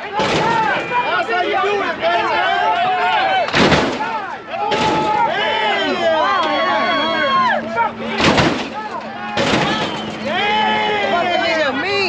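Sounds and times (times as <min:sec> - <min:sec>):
hydraulic car hopping bangs: 0:00.0 - 0:01.2, 0:03.5 - 0:05.6, 0:08.0 - 0:10.7
crowd yelling and whooping: 0:00.0 - 0:12.0.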